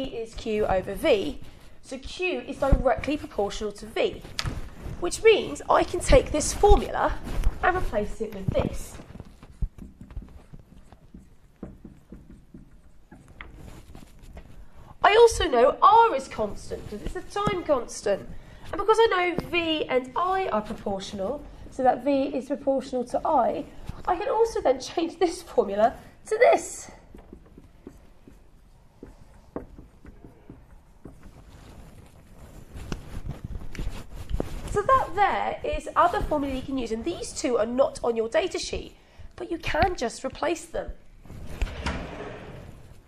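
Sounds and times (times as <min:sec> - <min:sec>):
marker scratching on whiteboard: 0:02.3 - 0:38.6
marker tapping on whiteboard: 0:09.6 - 0:13.5, 0:27.1 - 0:31.3.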